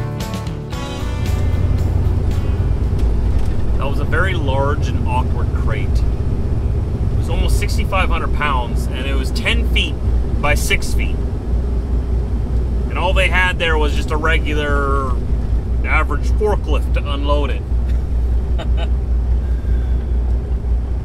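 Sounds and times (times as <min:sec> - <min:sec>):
truck engine drone: 0:00.0 - 0:21.0
road noise: 0:00.7 - 0:21.0
man talking: 0:03.8 - 0:06.1, 0:07.1 - 0:11.2, 0:12.9 - 0:15.2, 0:15.8 - 0:17.6.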